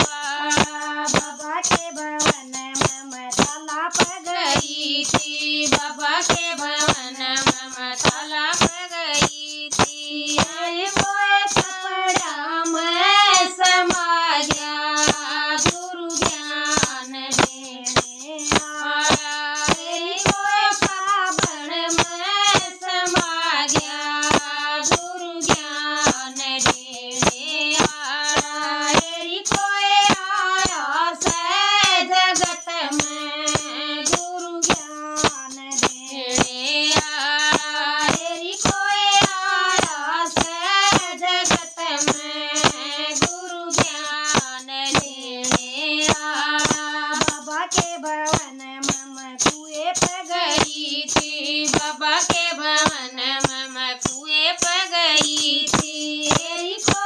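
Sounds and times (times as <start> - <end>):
handheld percussion: 0.0 - 57.0
women singing devotional song: 0.0 - 57.0.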